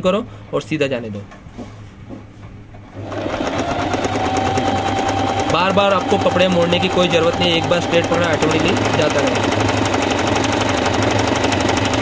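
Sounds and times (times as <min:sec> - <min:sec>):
sewing machine running: 0:03.0 - 0:12.0.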